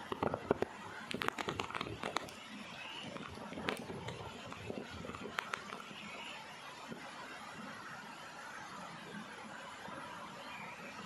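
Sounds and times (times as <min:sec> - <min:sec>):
sharp crackles and clicks: 0:00.0 - 0:07.0.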